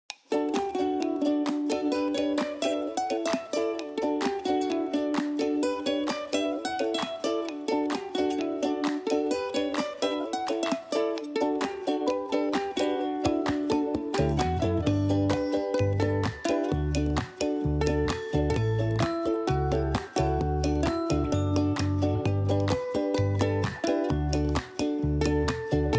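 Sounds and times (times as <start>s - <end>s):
light plucked string tune: 0.1s - 25.9s.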